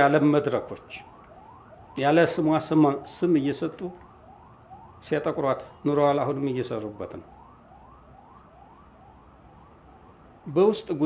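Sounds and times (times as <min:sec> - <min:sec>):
faint wailing siren: 0:00.0 - 0:11.0.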